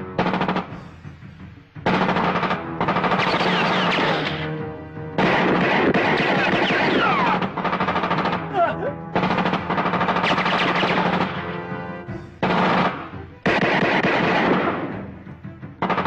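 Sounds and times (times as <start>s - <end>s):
background music: 0.0s - 16.0s
automatic gunfire bursts: 1.9s - 4.5s, 5.2s - 8.5s, 9.2s - 11.6s, 12.4s - 15.0s, 15.8s - 16.0s.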